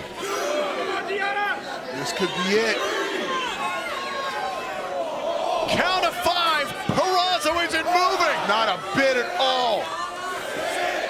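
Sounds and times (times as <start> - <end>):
crowd shouting a count: 0.0 - 11.0.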